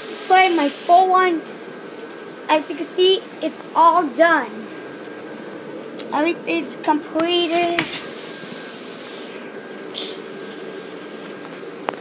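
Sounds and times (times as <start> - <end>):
electric blower fans droning: 0.0 - 12.0.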